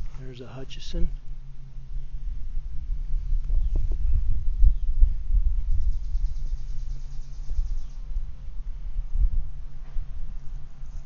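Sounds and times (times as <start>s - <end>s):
high pulsing insect buzz: 0.0s - 8.7s
low rumble on microphone: 0.0s - 11.0s.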